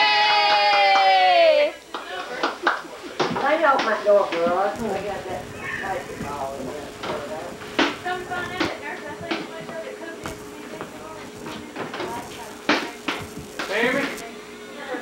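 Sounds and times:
voices talking: 1.4s - 15.0s.

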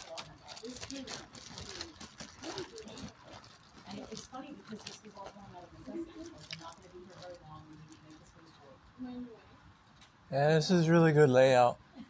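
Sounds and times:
soft clicks and rustles: 0.0s - 8.8s.

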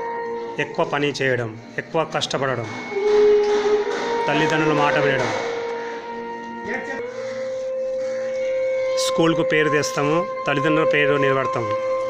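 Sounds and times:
held musical note drone: 0.0s - 12.0s.

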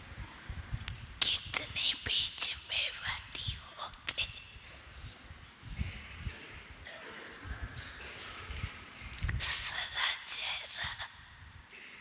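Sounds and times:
person whispering: 1.2s - 4.9s, 7.4s - 12.0s.

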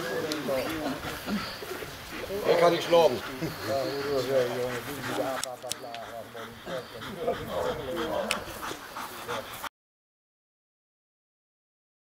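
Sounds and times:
dog vocalizing: 0.6s - 9.7s.

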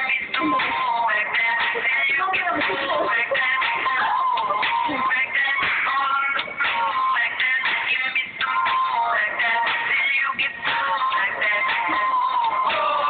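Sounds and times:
recorded song with vocals: 0.0s - 13.0s.

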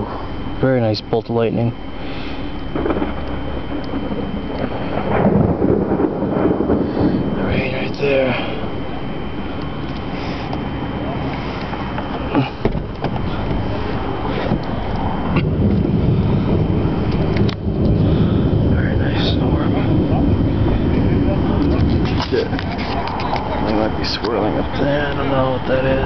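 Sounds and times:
thunder rumbling: 0.0s - 26.0s
wind: 0.0s - 26.0s.

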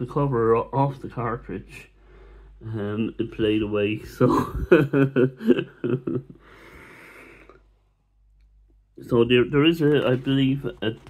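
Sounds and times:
breathy exhale: 2.0s - 2.6s, 6.4s - 7.6s
man laughing: 4.0s - 6.5s.

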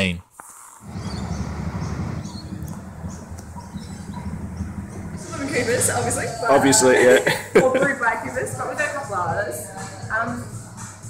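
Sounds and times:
faint bird chirps: 0.6s - 5.0s
low street rumble: 0.8s - 11.0s.

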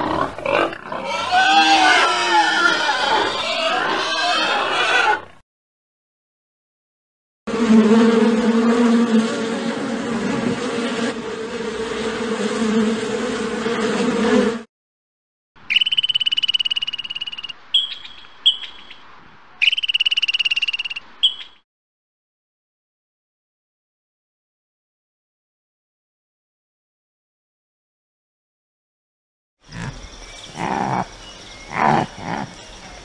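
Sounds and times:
pig squealing and grunting: 0.0s - 5.4s, 29.7s - 31.1s, 31.7s - 32.6s
squirrel short chirps: 15.7s - 18.8s, 19.6s - 21.6s
squirrel chattering trill: 29.7s - 31.1s, 31.7s - 33.0s.

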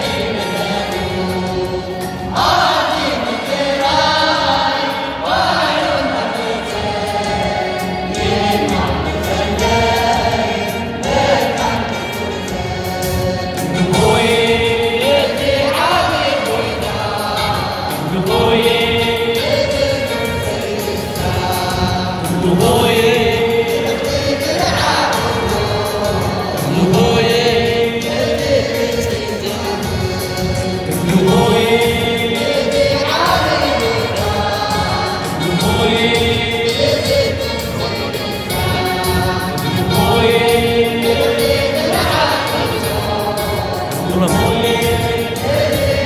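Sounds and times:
choir singing a hymn: 0.0s - 46.0s.

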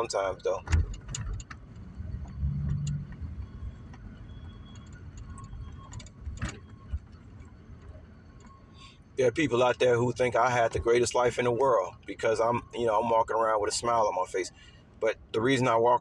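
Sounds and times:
car cabin rumble: 0.0s - 8.6s.

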